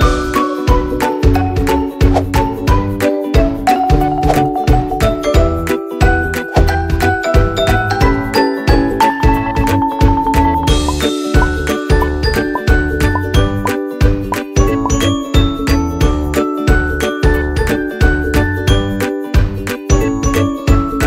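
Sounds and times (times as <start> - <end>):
background music with beat: 0.0 - 21.0.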